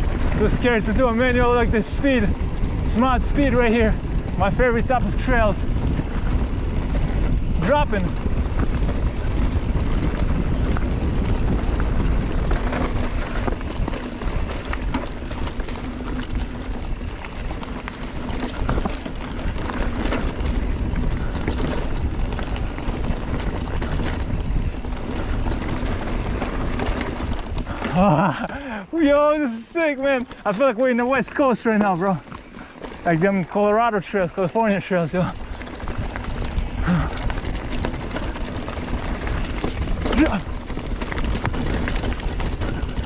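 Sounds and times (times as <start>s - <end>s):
bike chain clicks and rattles: 0.0s - 43.0s
tyres rumbling on dirt and rocks: 0.0s - 43.0s
wind buffeting microphone: 0.0s - 43.0s.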